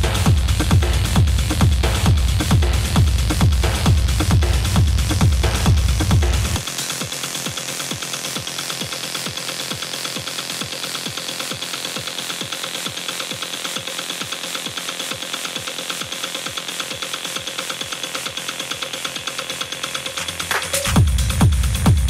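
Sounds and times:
thin kick drum beat: 0.0s - 12.7s, 15.6s - 22.0s.

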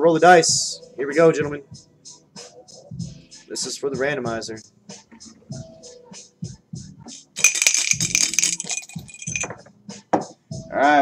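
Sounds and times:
dice rattling in a hand: 7.4s - 9.5s
dice rolling onto cloth mat: 7.4s - 9.5s.

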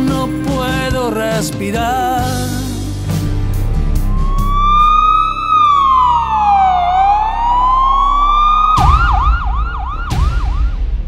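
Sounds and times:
police siren wailing: 4.0s - 11.0s
police siren fast yelp: 4.1s - 10.8s.

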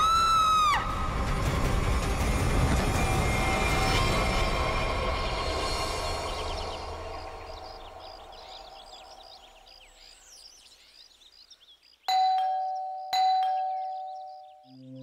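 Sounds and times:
doorbell ding-dong chime: 12.1s - 14.3s.

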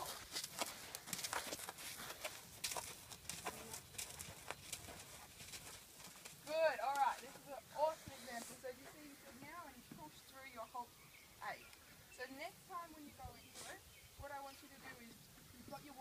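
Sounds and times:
horse hooves clip-clop: 0.0s - 10.2s.

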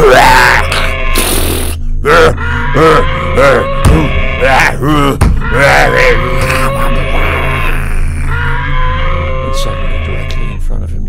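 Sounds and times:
man wailing: 0.0s - 0.9s, 2.0s - 10.4s
low hum: 0.0s - 11.0s.

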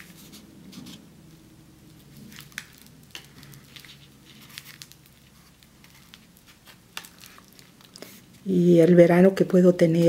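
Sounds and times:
paper pages rustling: 2.2s - 8.2s.

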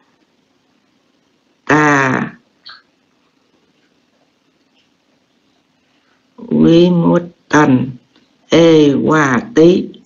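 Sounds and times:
person voicing drawn-out syllable: 1.7s - 2.8s.

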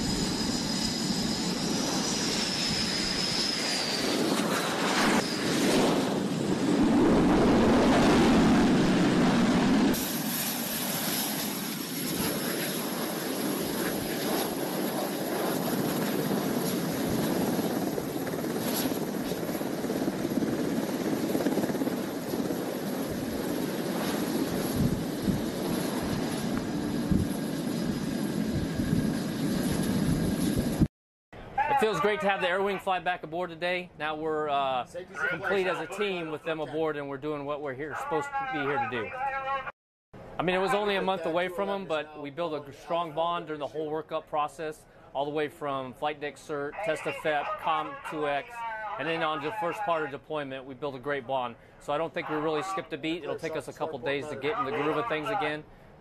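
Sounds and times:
high-pitched jet whine: 0.0s - 19.1s
jet engine roar: 0.0s - 30.9s.

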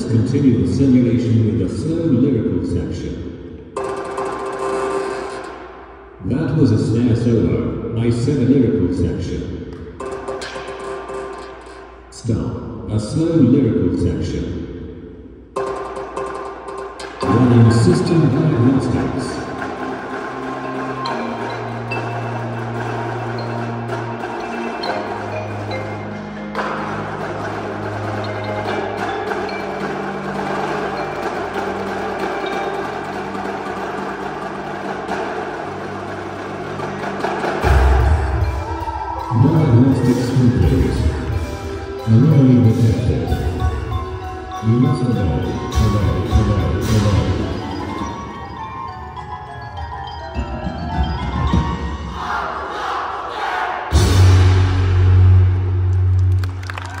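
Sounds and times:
marimbas and vibraphones playing: 9.8s - 12.1s, 15.6s - 53.1s.

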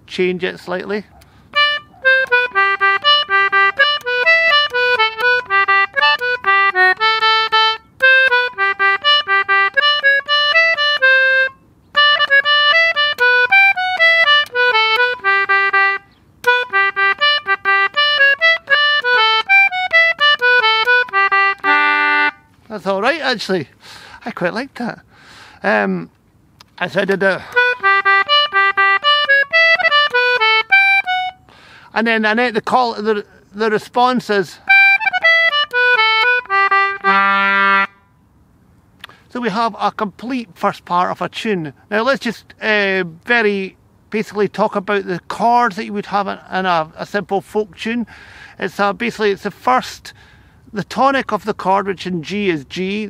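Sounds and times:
concertina jig melody: 1.5s - 22.9s, 26.0s - 31.6s, 32.6s - 38.3s.

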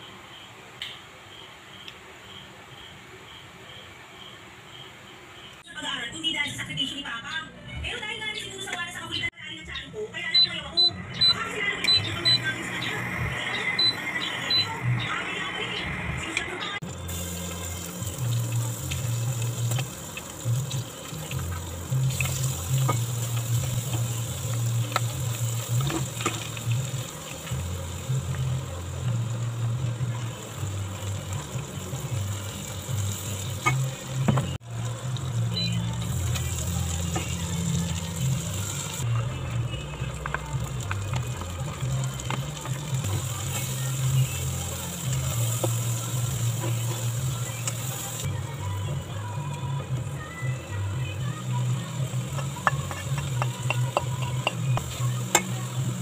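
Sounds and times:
background music: 9.8s - 56.0s
garlic sizzling in oil: 16.9s - 56.0s.

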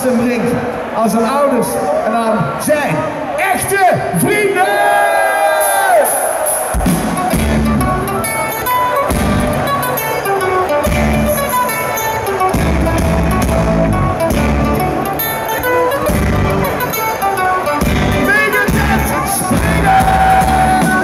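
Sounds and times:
electric guitar: 6.5s - 21.0s
bass guitar: 6.8s - 21.0s.

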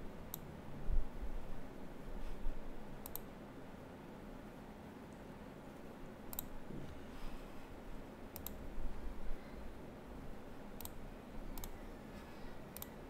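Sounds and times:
computer mouse clicking: 3.0s - 3.3s, 6.3s - 6.5s, 8.3s - 8.6s, 10.8s - 11.0s, 11.6s - 11.8s, 12.7s - 13.0s.

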